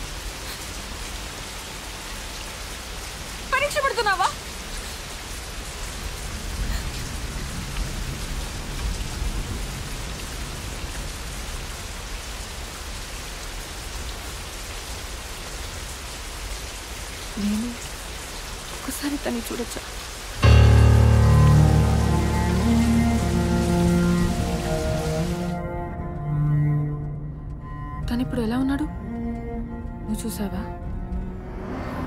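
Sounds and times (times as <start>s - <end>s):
heavy rain falling: 0.0s - 26.6s.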